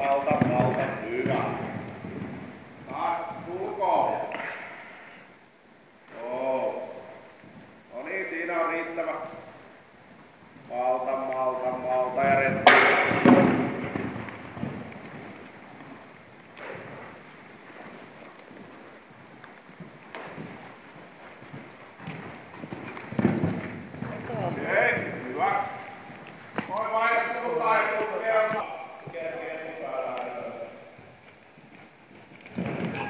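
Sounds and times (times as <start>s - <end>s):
muffled hoofbeats on sand: 0.0s - 4.3s, 6.2s - 33.0s
loud thump: 12.6s - 13.8s.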